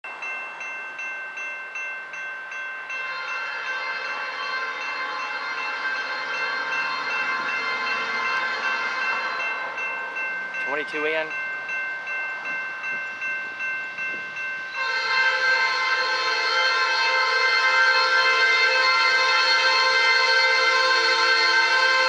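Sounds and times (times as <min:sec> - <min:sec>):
crossing bell ringing: 0:00.0 - 0:22.0
low rumble of train: 0:00.0 - 0:22.0
locomotive horn blast: 0:03.1 - 0:09.7, 0:14.7 - 0:22.0.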